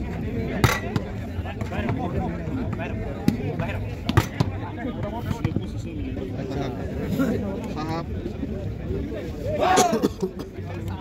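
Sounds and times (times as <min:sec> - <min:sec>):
crowd talking and calling: 0:00.0 - 0:11.0.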